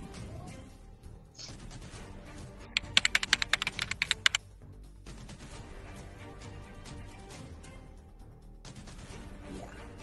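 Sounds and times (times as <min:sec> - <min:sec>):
faint background music: 0:00.0 - 0:10.0
keyboard typing: 0:02.8 - 0:04.4.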